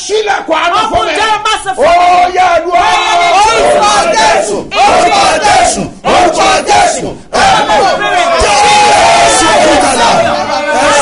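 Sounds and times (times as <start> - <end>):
voices shouting in prayer: 0.0 - 11.0.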